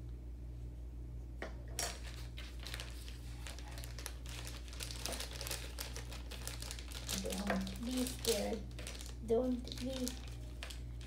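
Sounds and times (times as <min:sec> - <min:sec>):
low steady hum: 0:00.0 - 0:11.0
plastic bag crinkling: 0:01.9 - 0:11.0.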